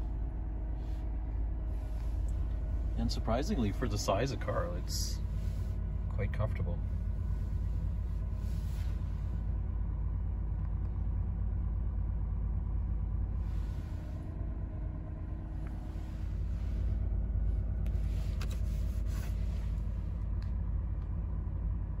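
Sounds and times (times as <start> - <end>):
car engine idling rumble: 0.0 - 22.0.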